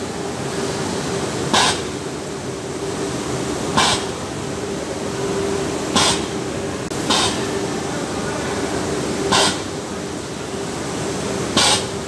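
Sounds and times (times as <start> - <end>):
steady machine hum: 0.0 - 12.0
compressed air hisses: 9.3 - 9.7.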